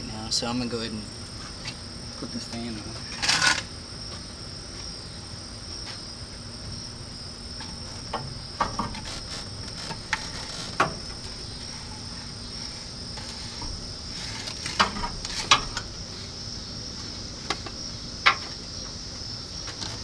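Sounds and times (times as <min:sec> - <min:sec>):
crickets trilling: 0:00.0 - 0:20.0
scraping rustle: 0:03.0 - 0:03.7, 0:07.6 - 0:16.4, 0:19.6 - 0:20.0.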